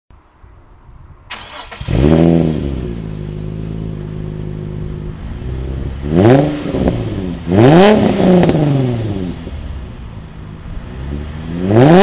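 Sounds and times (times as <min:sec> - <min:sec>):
car engine revving and idling: 0:01.4 - 0:12.0.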